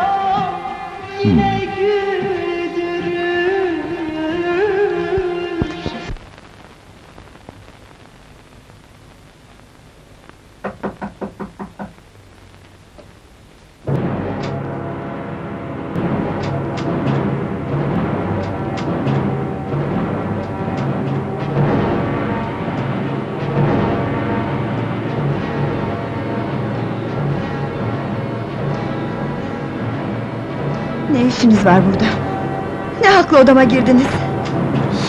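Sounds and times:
tense suspense score: 13.9s - 35.0s.

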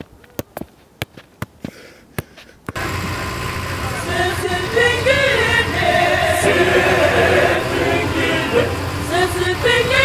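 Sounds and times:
bus engine and road rumble: 2.5s - 10.0s
voices: 2.8s - 10.0s.

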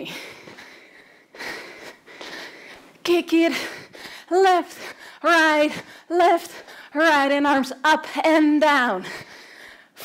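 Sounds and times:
woman breathing hard: 0.0s - 7.0s, 9.0s - 10.0s.

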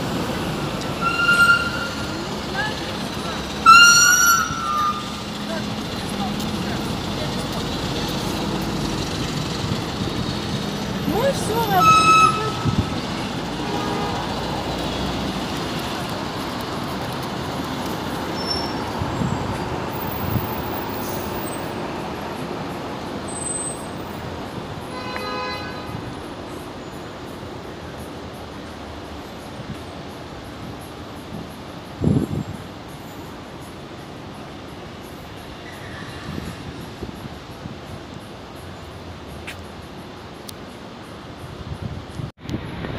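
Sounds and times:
street traffic: 0.0s - 42.9s.

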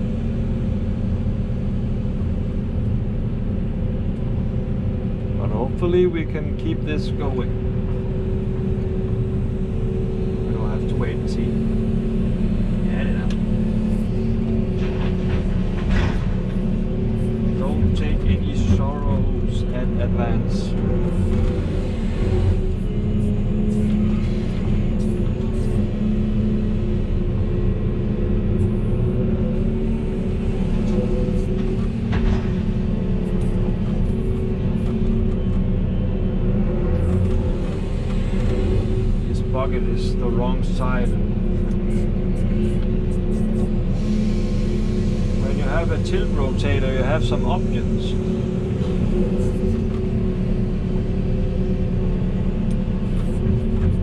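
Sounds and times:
excavator diesel engine and hydraulics: 0.0s - 54.0s.

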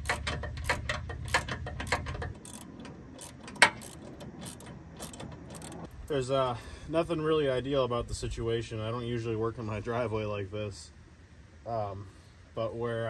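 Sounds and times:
ratchet wrench clicking: 0.0s - 5.9s.

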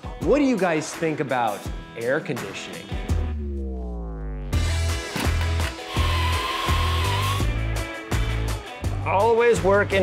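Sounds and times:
background music with steady beat: 0.0s - 10.0s
power drill whining: 5.4s - 7.5s.

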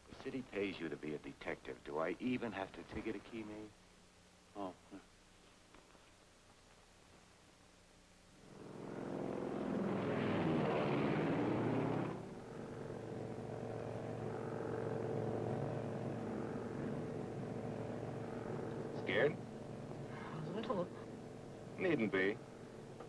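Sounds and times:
propeller plane engine: 8.4s - 23.0s.

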